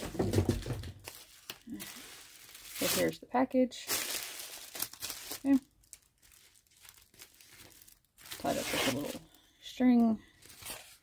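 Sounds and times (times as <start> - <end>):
plastic wrapping crinkling: 0.6 - 9.4.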